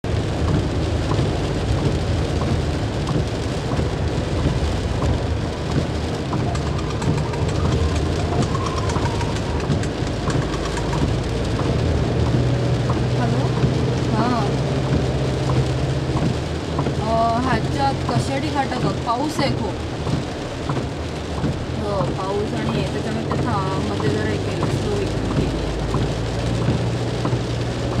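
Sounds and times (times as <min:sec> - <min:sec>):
heavy rain drumming on car roof: 0:00.0 - 0:28.0
low rumble of car on road: 0:00.0 - 0:28.0.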